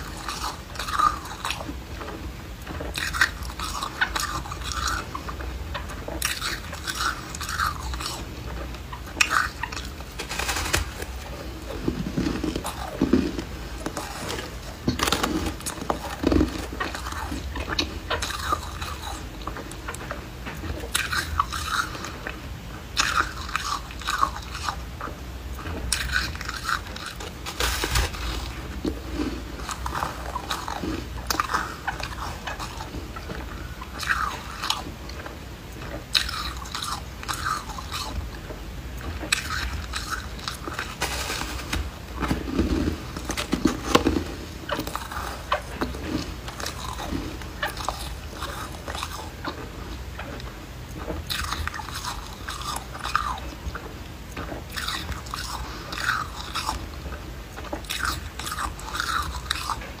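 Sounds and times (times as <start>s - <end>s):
ice being bitten and crunched: 9.2s - 19.2s, 39.2s - 49.4s, 54.7s - 56.8s, 57.8s - 59.8s.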